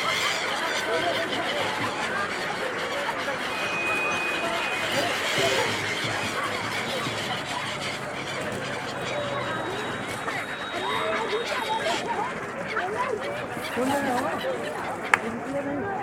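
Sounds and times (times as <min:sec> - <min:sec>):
gulls calling: 0:00.0 - 0:15.2
crowd chatter: 0:00.0 - 0:16.0.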